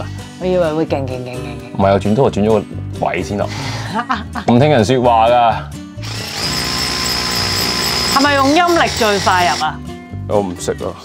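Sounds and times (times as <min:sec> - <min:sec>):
drill boring into concrete: 0:06.0 - 0:09.8.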